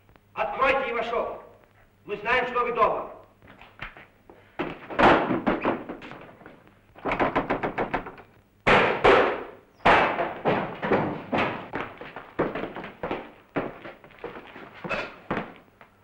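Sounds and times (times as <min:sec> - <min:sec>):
rapid sharp bangs: 0:07.0 - 0:11.7.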